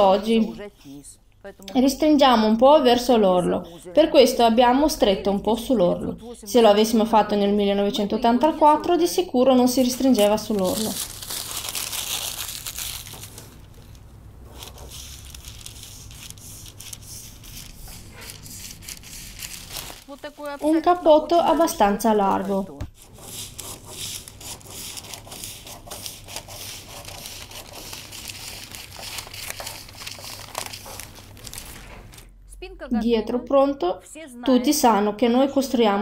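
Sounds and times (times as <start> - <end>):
paper rustling and crinkling: 9.8 - 32.3.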